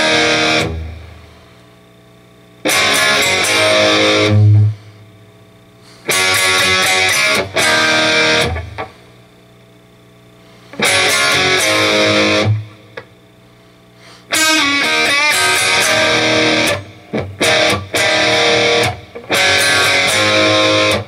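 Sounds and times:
electric guitar rock phrases: 0.0 - 1.4, 2.6 - 5.0, 6.0 - 9.2, 10.6 - 13.3, 14.2 - 21.0.

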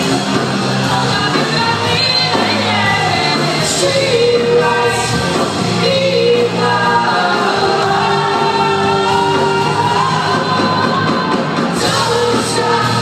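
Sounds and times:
electric guitars playing: 0.0 - 13.0.

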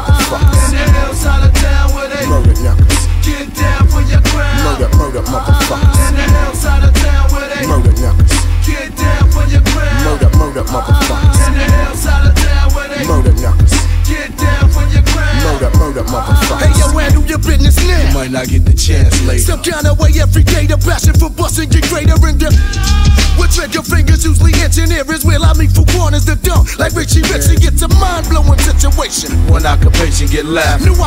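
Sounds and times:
heavy pulsing bass line: 0.0 - 31.0
rapping over a beat: 0.0 - 31.0.

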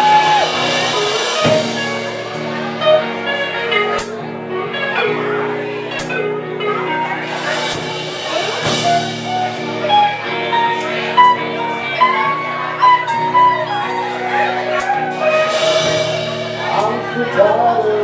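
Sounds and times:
live band playing rock music: 0.0 - 18.0.

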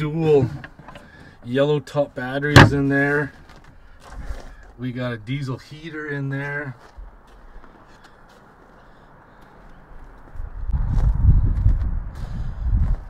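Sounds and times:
footsteps on packed snow: 6.7 - 13.0
wind buffeting microphone: 10.4 - 13.0.

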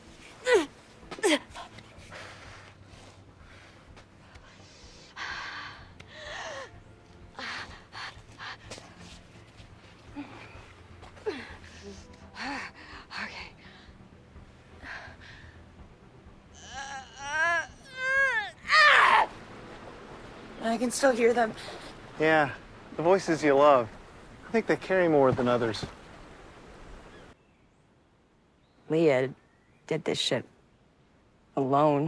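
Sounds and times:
outdoor ambience rush: 0.0 - 32.0.

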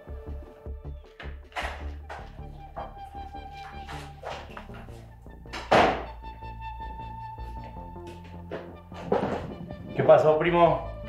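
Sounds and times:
film music: 0.0 - 11.0
wooden door shutting: 1.5 - 2.8, 5.5 - 6.2.

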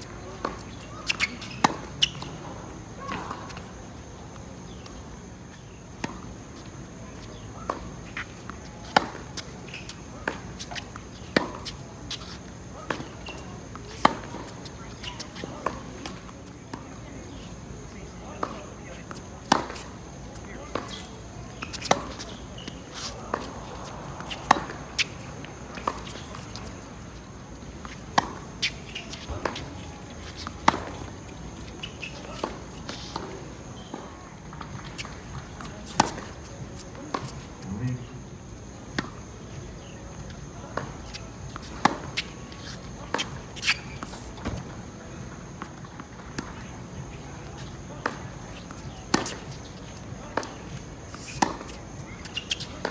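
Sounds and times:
shoe scuffs on court: 0.0 - 52.9
racket striking tennis ball: 20.7 - 26.7, 27.8 - 37.4, 40.7 - 44.6, 48.0 - 49.6, 50.4 - 52.9.

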